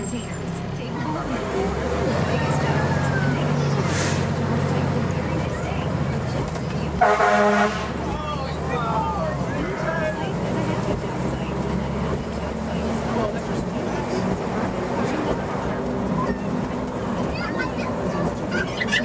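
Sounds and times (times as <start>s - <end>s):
diesel engine running: 0.0s - 19.0s
vehicle horn toot: 7.0s - 8.0s.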